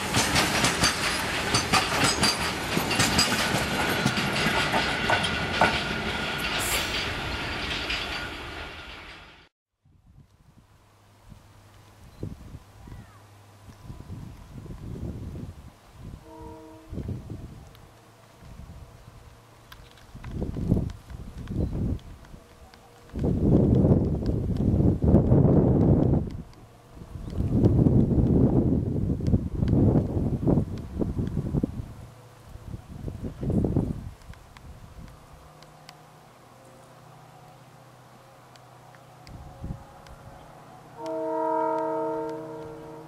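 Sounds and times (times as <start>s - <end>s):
wind buffeting microphone: 9.9s - 17.8s, 18.4s - 35.5s, 39.3s - 40.6s
locomotive horn blast: 16.2s - 17.2s, 39.4s - 43.0s.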